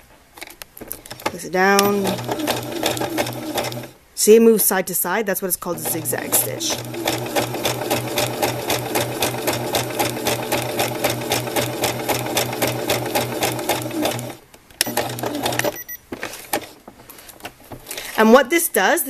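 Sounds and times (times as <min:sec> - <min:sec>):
sewing machine stitching: 0:01.0 - 0:04.0, 0:05.7 - 0:15.8.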